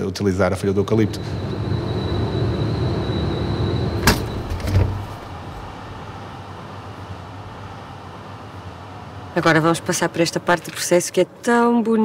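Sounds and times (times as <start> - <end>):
thin high whine: 0.5 - 8.6
laundry machine humming: 0.8 - 10.1
door thud: 4.0 - 5.2.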